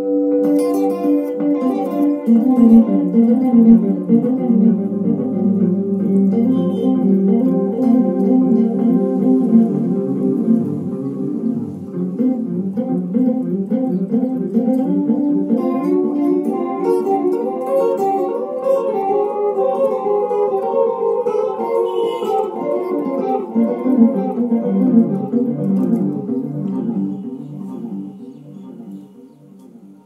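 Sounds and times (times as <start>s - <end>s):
solo guitar playing: 0.0s - 30.0s.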